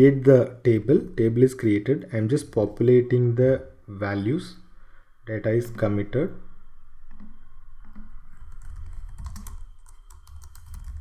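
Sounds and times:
low steady hum: 0.0s - 11.0s
typing on computer keyboard: 7.1s - 11.0s.

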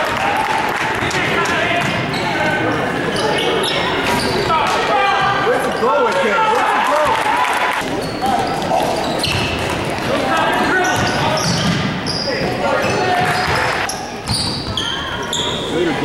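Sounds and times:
murmur of voices: 0.0s - 16.0s
sneakers squeaking on hardwood floor: 1.8s - 6.0s, 7.8s - 16.0s
basketball bouncing: 9.2s - 10.1s.

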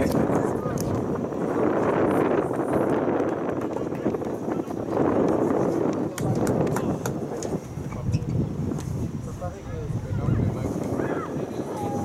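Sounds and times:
distant indistinct voices: 0.0s - 12.0s
wind rumbling on microphone: 0.0s - 12.0s.

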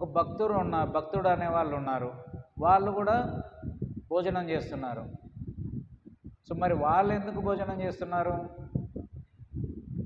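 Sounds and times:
man speaking into a microphone: 0.0s - 5.3s, 6.4s - 8.9s
low irregular murmur: 0.0s - 10.0s.

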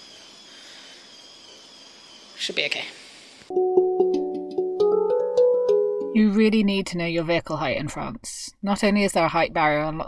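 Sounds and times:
thin high-pitched whines: 0.0s - 2.8s.

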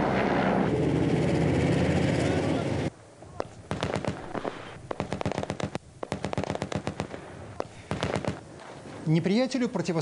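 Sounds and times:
armoured vehicle engine driving past: 0.0s - 2.9s
helicopter flying over: 0.0s - 2.9s.

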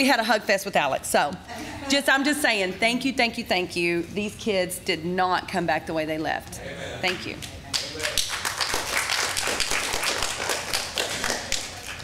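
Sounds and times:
congregation clapping: 7.7s - 12.0s.

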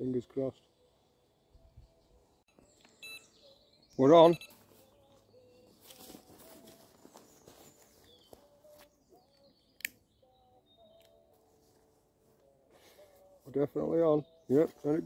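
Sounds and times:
faint bird chirps: 0.6s - 11.3s.

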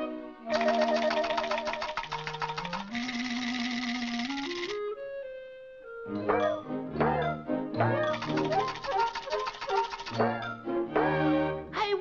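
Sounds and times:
orchestral cartoon music: 0.0s - 2.2s, 4.5s - 12.0s
cartoon rattle shaking: 0.5s - 4.8s, 8.0s - 10.5s.

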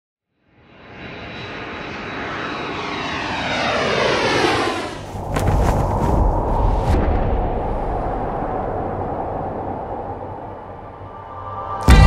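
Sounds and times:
cinematic boom rumble: 5.5s - 10.8s.

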